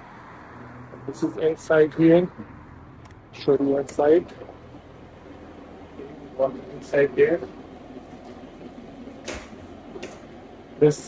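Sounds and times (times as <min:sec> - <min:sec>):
low fan hum: 0:00.0 - 0:11.0.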